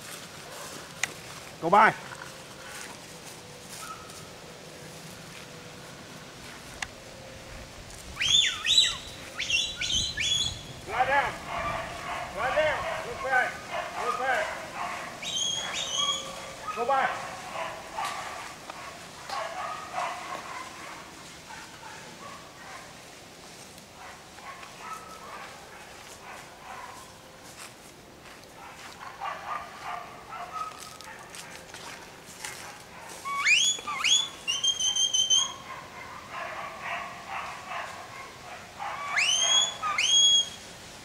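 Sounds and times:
rising herding whistles: 0:08.2 - 0:10.8, 0:15.2 - 0:16.5, 0:33.2 - 0:35.6, 0:39.0 - 0:40.6
dog barking: 0:11.0 - 0:22.9, 0:24.0 - 0:27.1, 0:28.6 - 0:33.2, 0:34.0 - 0:40.3.

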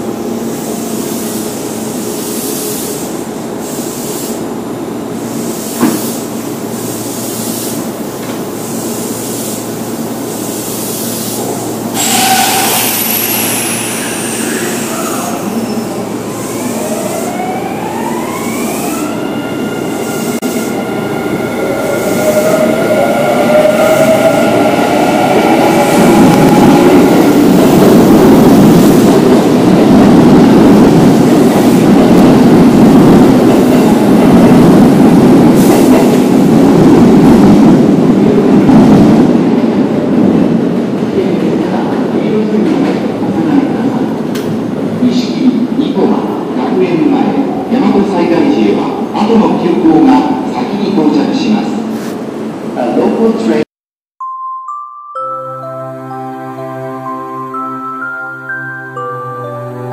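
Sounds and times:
train cars rumbling past: 0:09.6 - 0:45.7.

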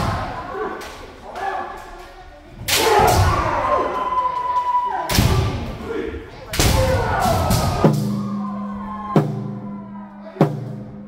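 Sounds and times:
people shouting: 0:02.7 - 0:11.0.

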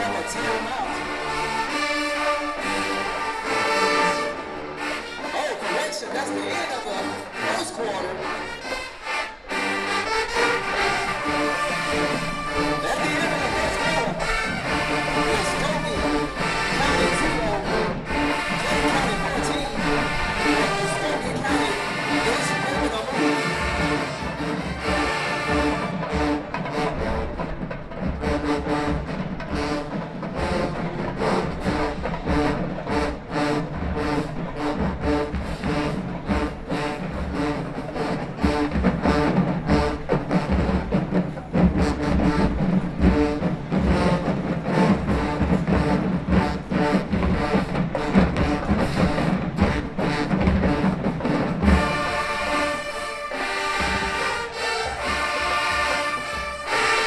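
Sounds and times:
brass holding chords: 0:00.0 - 0:57.0
drumline with cymbals: 0:00.0 - 0:57.0.

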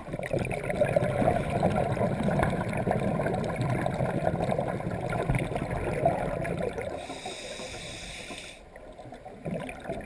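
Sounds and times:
water gurgling and sloshing: 0:00.0 - 0:10.0
faint hiss: 0:06.9 - 0:08.8.

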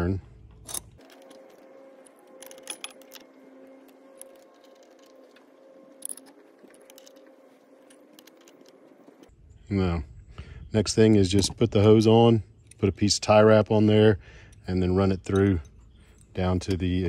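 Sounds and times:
faint steady hum: 0:00.0 - 0:17.0
wrench metallic clicks and rattles: 0:00.6 - 0:03.3, 0:03.9 - 0:08.8.

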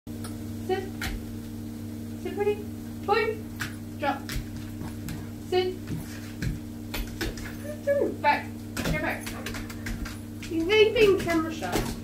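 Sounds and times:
steady low hum: 0:00.1 - 0:12.0.

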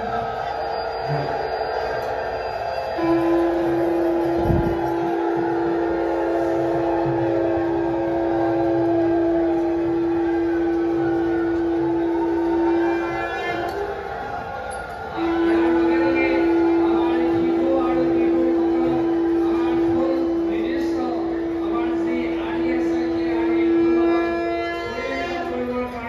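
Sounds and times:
crowd murmur: 0:00.0 - 0:26.0
faint wavering conch notes: 0:00.0 - 0:26.0
conch shell horn note: 0:02.8 - 0:14.4, 0:15.1 - 0:26.0.

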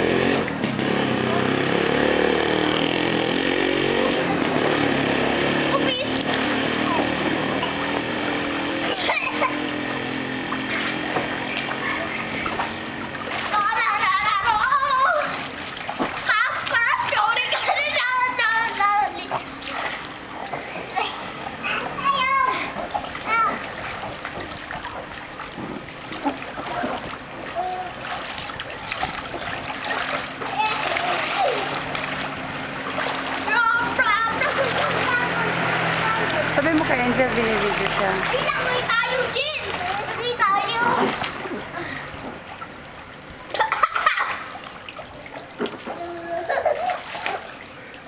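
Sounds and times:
water splashing: 0:00.0 - 0:48.0
child calling out: 0:46.0 - 0:47.0.

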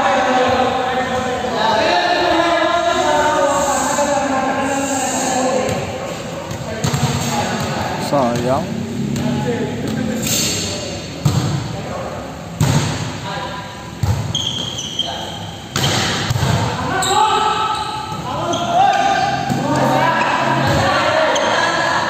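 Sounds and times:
volleyball smacks echoing: 0:11.2 - 0:11.7, 0:12.6 - 0:13.2, 0:15.7 - 0:16.8.

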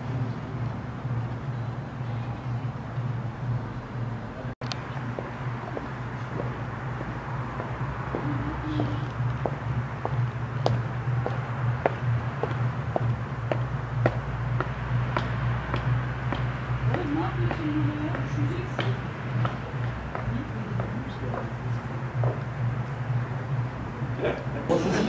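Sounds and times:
low background hum: 0:00.0 - 0:25.0
footsteps approaching: 0:04.6 - 0:23.4.

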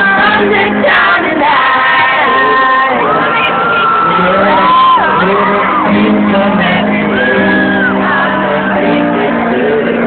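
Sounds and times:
loud live concert music: 0:00.0 - 0:10.0
crowd shouting and whooping: 0:00.1 - 0:09.9.

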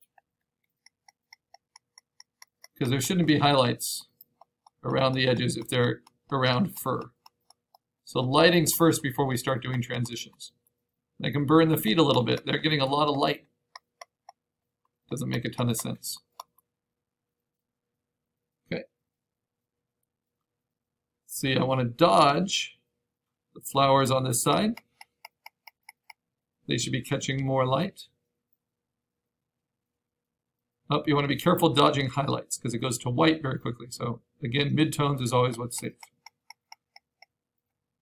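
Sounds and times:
computer mouse clicks: 0:24.5 - 0:26.2, 0:35.5 - 0:37.4.

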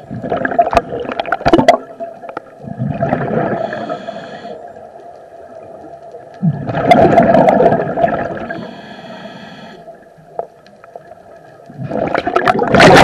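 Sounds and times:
gurgling exhaled bubbles: 0:00.0 - 0:03.8, 0:06.4 - 0:08.6, 0:11.7 - 0:13.0.

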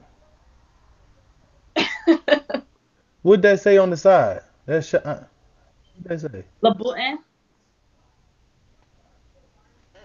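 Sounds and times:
person laughing: 0:01.8 - 0:02.6.

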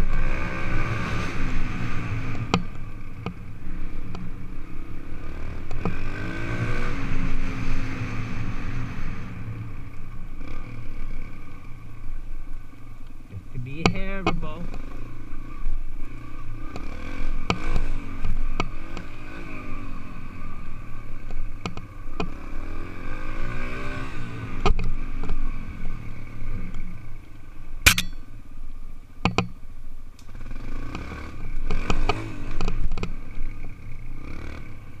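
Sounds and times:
sharp knock: 0:27.9 - 0:28.2.

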